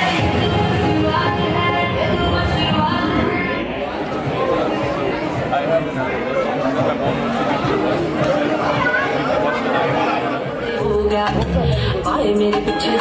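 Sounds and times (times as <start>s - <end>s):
people talking at once: 0.0s - 13.0s.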